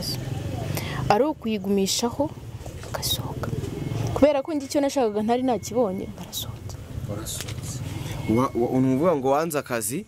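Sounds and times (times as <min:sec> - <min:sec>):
woman breathing: 0:00.7 - 0:01.1.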